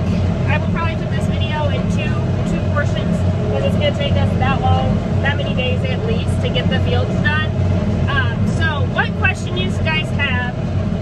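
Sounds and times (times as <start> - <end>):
tractor engine running under load: 0.0 - 11.0.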